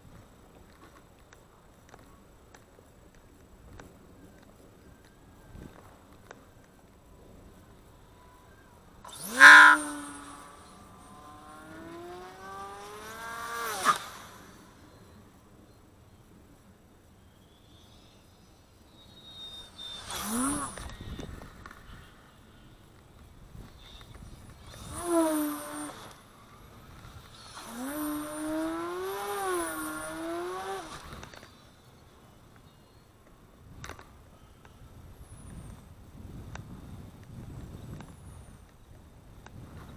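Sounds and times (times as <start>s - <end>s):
model airplane propeller whining: 7.4s - 15.3s, 17.2s - 33.0s.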